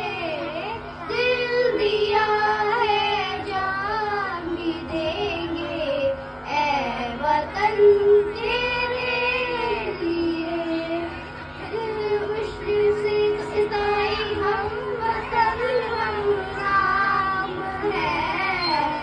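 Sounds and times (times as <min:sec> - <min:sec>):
girls singing into a microphone: 0:00.0 - 0:19.0.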